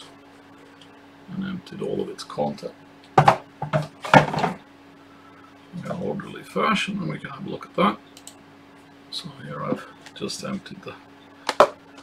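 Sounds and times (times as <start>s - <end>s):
parts knocking and scraping on desk: 3.2s - 4.6s, 11.5s - 11.8s.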